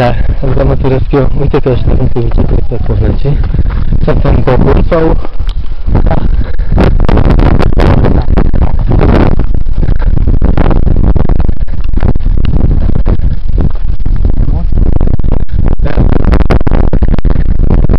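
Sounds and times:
bike rumble and clatter: 0.0s - 17.9s.

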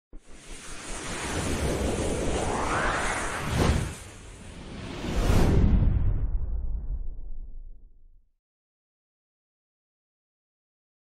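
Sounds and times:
whoosh with deep rumble: 0.2s - 8.2s.

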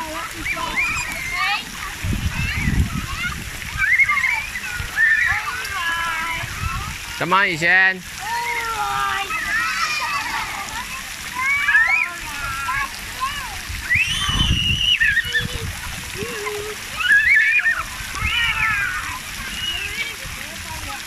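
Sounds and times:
children calling out: 0.0s - 7.2s, 8.2s - 20.3s
splashing in shallow water: 0.0s - 21.0s
child shouting: 8.2s - 13.6s.

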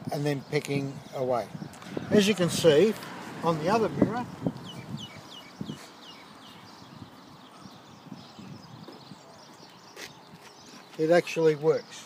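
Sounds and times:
small bird chirping: 4.4s - 12.0s.

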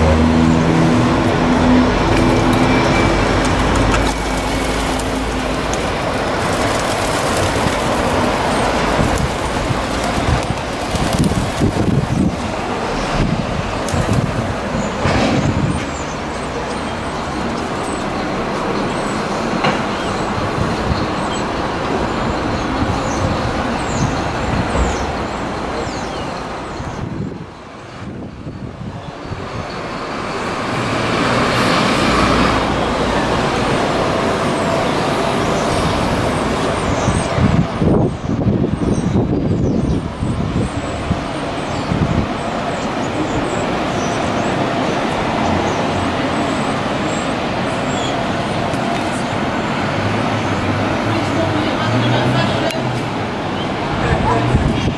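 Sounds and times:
road vehicles passing: 0.0s - 54.9s.

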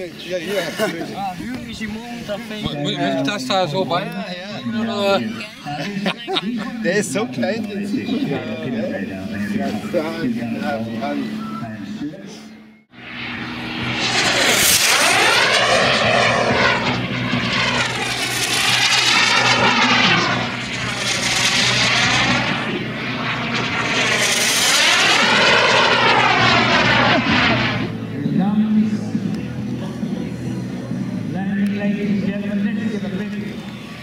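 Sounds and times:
model jet turbine passing: 13.0s - 28.1s.

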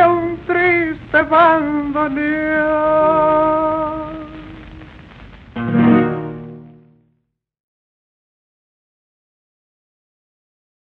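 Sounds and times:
faint hiss: 0.0s - 7.0s
loud final chord: 5.6s - 7.0s.

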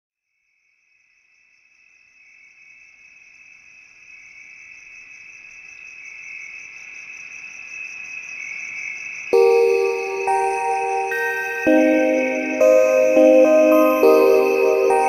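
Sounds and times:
high-pitched insect trill: 2.1s - 15.0s.

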